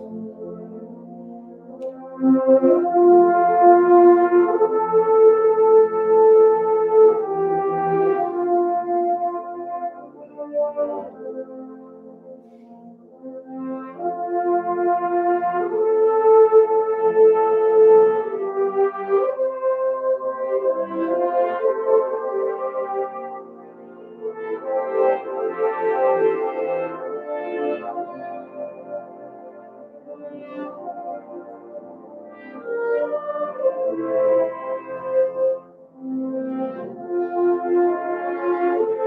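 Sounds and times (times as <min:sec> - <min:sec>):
french horns playing chords: 0:00.0 - 0:39.0.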